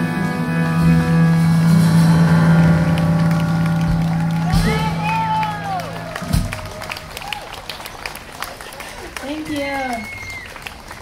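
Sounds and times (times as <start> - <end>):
jazz band sustained chord: 0.0 - 6.9
person whooping: 4.5 - 7.5.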